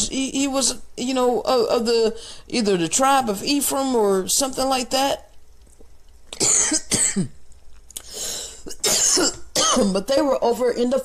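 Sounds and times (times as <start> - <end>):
man coughing: 6.4 - 7.4, 8.7 - 10.0.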